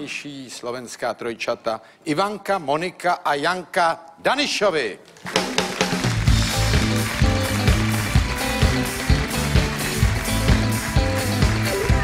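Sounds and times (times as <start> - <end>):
live band playing upbeat tune: 5.3 - 12.0.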